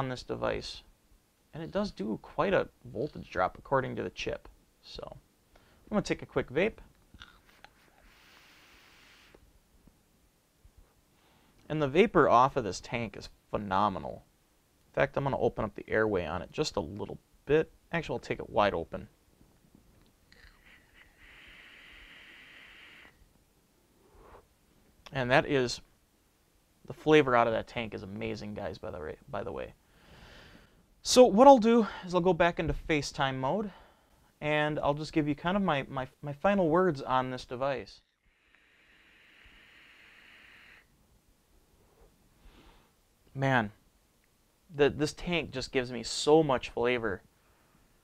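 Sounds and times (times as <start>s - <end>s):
faint breath: 5.5s - 5.9s, 7.4s - 9.4s, 11.1s - 11.6s, 20.4s - 23.2s, 24.0s - 24.5s, 29.8s - 30.9s, 33.7s - 34.4s, 38.2s - 40.9s, 41.8s - 43.0s, 47.4s - 48.0s
soft exhale: 7.2s - 9.4s, 20.4s - 23.2s, 24.0s - 24.5s, 38.2s - 40.9s, 41.8s - 43.0s
airy hiss of vape draw: 7.4s - 9.4s, 20.4s - 23.2s, 24.0s - 24.5s, 38.2s - 40.9s.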